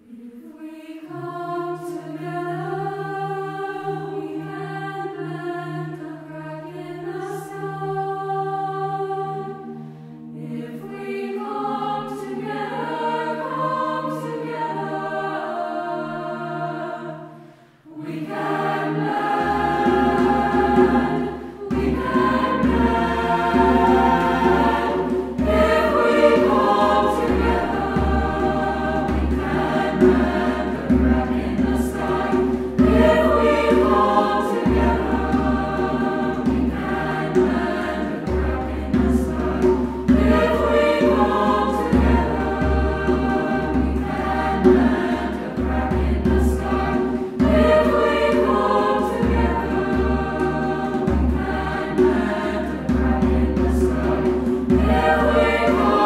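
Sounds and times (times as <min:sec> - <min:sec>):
choir singing: 0:00.0 - 0:56.0.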